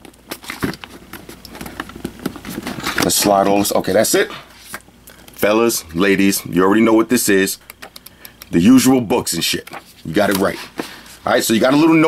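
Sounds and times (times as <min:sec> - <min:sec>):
cardboard and paper packaging handled: 0:00.0 - 0:06.2.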